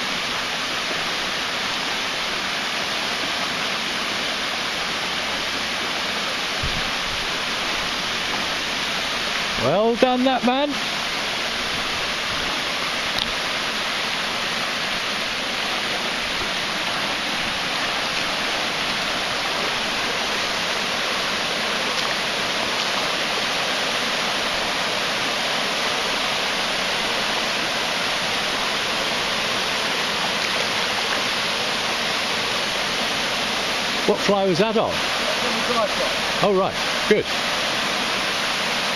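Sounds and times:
river water rushing over stones: 0.0s - 38.9s.

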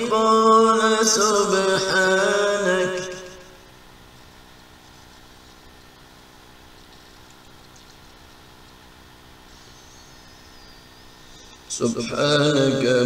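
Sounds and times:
faint high wavering whine: 0.0s - 13.0s
low hum with hiss: 0.0s - 13.0s.

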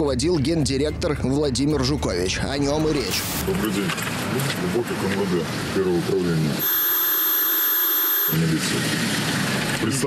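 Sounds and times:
man's voice: 0.0s - 4.0s.

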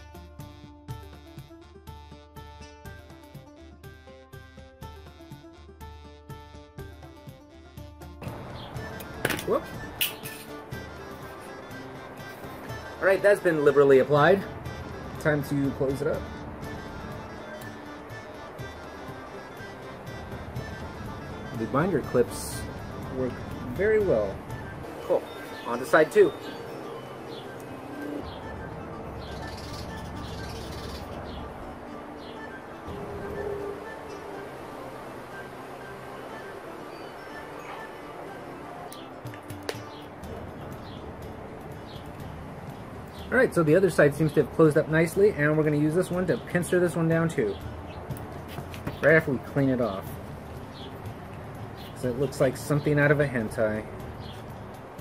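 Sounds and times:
background music: 0.0s - 55.0s
bird chirps: 24.6s - 39.2s.

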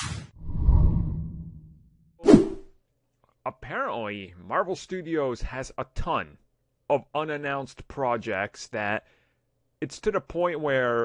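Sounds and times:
short whoosh: 2.2s - 2.7s.

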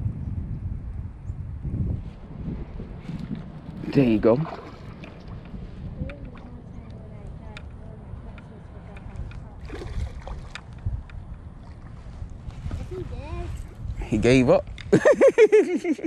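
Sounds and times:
wind on microphone: 0.0s - 15.3s.

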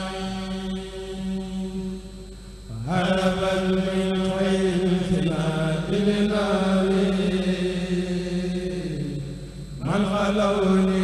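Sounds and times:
men chanting through microphone: 0.0s - 2.0s, 2.6s - 11.0s.

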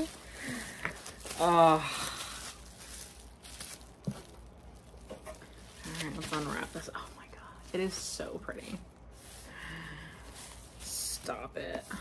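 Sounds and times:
bubble wrap crinkling: 0.0s - 12.0s.

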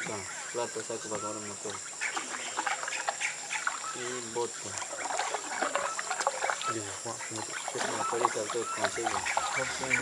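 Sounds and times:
water lapping around a boat: 0.0s - 10.0s.

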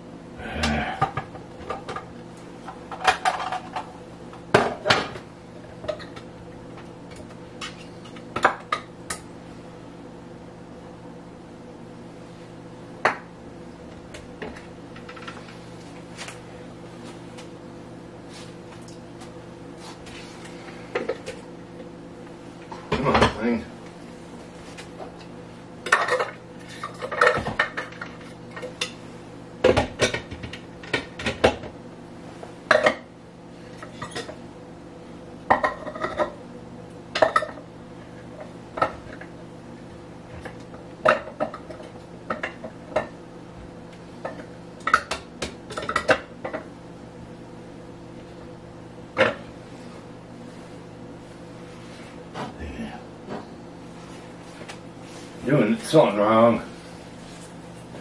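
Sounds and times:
steady low hum: 0.0s - 58.0s
dishes and utensils clattering: 25.9s - 28.9s, 35.5s - 36.4s.

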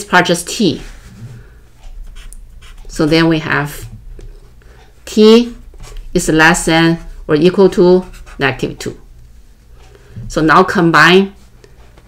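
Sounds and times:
marker scratching on paper: 2.0s - 3.9s, 5.4s - 8.9s.

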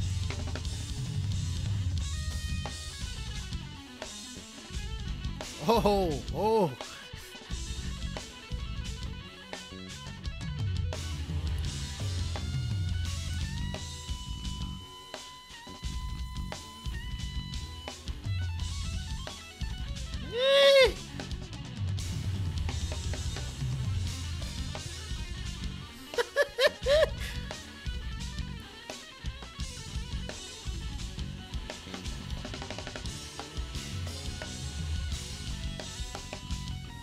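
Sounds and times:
drum kit: 0.0s - 37.0s
electric guitar: 0.0s - 37.0s
person exclaiming oh: 5.6s - 7.0s, 20.3s - 21.0s, 26.2s - 27.4s.

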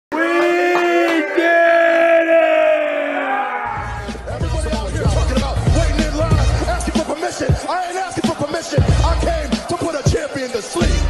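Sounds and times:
bass-heavy music beat: 3.8s - 11.0s.

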